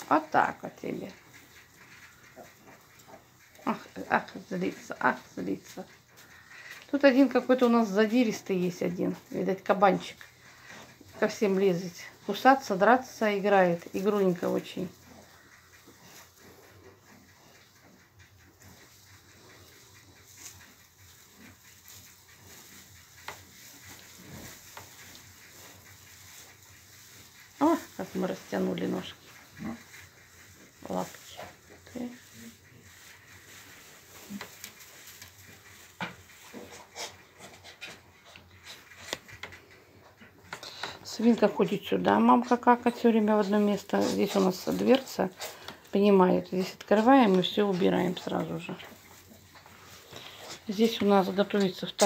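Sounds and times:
piglets rustling in straw: 0:00.0 - 0:52.0.

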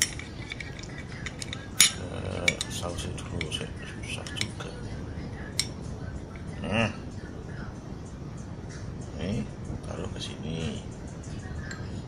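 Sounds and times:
chopsticks clinking on glass plate: 0:00.0 - 0:02.8.

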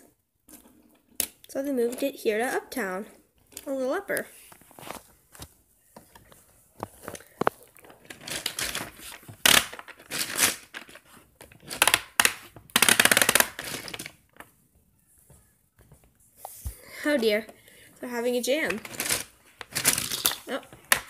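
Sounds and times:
plastic toy track clicks and knocks: 0:08.1 - 0:14.2, 0:18.6 - 0:21.0.

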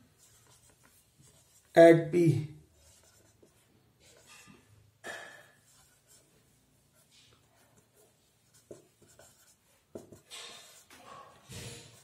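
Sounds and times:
marker writing on whiteboard: 0:00.0 - 0:02.0, 0:02.6 - 0:12.0.

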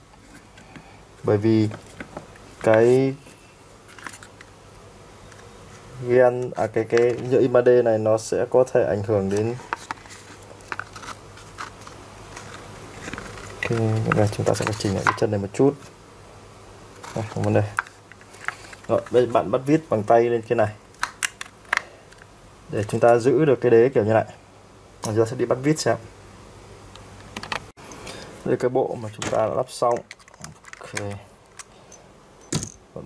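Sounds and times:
screwdriver handling noise: 0:09.3 - 0:15.2, 0:29.9 - 0:32.8
plastic clicks and scrapes: 0:29.9 - 0:31.7.

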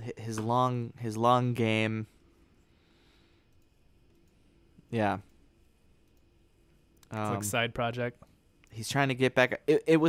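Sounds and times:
faint clicks: 0:03.4 - 0:04.4.

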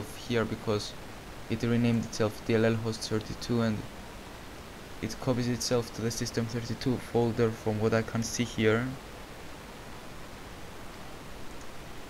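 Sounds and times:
microphone background hiss: 0:00.0 - 0:12.0.

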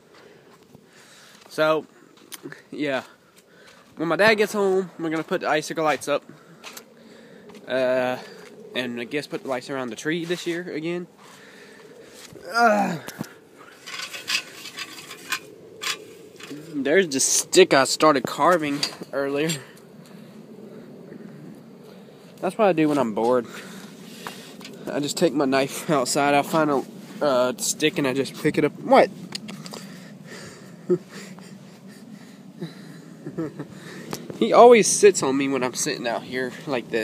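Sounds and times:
breathing close to microphone: 0:00.0 - 0:01.5, 0:03.2 - 0:04.0, 0:06.3 - 0:07.6, 0:11.2 - 0:14.0, 0:23.4 - 0:24.9, 0:29.5 - 0:34.4
person grunting: 0:12.4 - 0:13.3.

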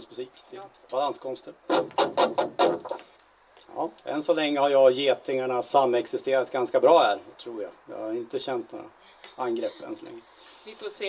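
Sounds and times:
person speaking: 0:09.4 - 0:11.0.

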